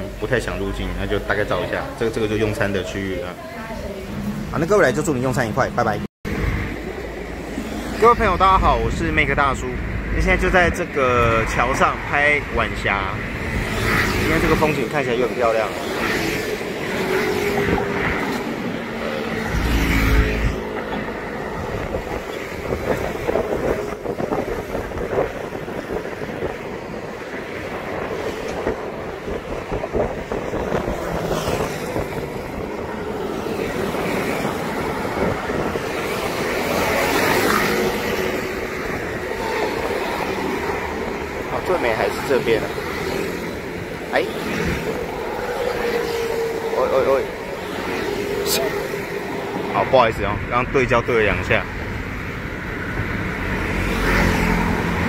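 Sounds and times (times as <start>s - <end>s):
road traffic passing: 0.0s - 55.0s
motor scooters passing: 10.8s - 55.0s.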